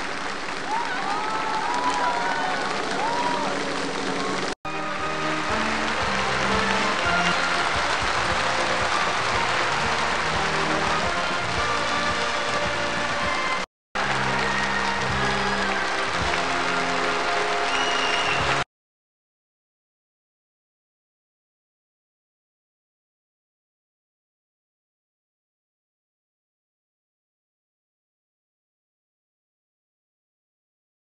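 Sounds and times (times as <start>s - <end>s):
audience applause: 0.0s - 18.7s
music from a stage performance: 3.1s - 18.6s.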